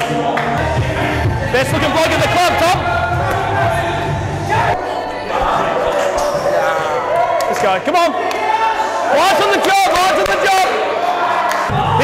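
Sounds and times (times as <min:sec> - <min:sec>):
team voices: 0:00.0 - 0:12.0.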